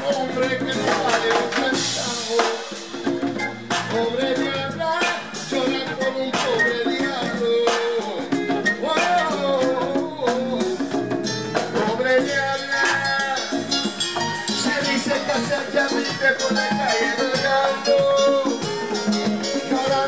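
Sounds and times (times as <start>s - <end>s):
congas struck by hand: 0.0s - 20.0s
latin funk band playing: 0.0s - 20.0s.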